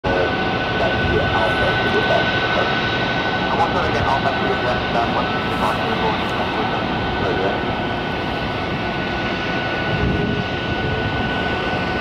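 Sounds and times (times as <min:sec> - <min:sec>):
jet engines running: 0:00.0 - 0:12.0
faint voices: 0:00.1 - 0:02.8, 0:03.4 - 0:07.6.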